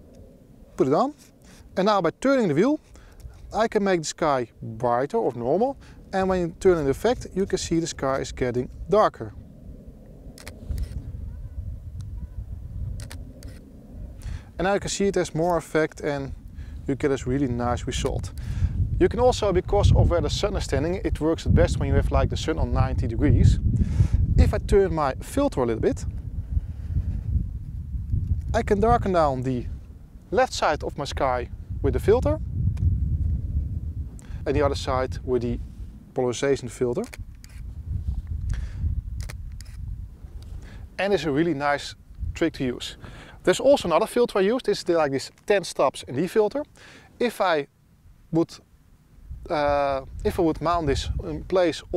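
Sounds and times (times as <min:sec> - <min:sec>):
low outdoor rumble: 0:00.0 - 0:51.9
wind buffeting microphone: 0:04.4 - 0:45.0, 0:49.2 - 0:51.9
faint camera handling clicks: 0:10.4 - 0:11.0, 0:13.0 - 0:13.6, 0:37.0 - 0:37.6, 0:39.2 - 0:39.8.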